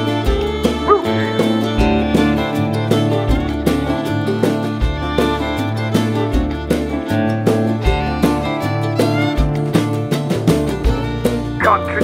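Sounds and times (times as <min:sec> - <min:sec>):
country-rock band playing: 0:00.0 - 0:12.0
fiddle: 0:00.0 - 0:12.0
yelp-like cry: 0:00.7 - 0:01.5.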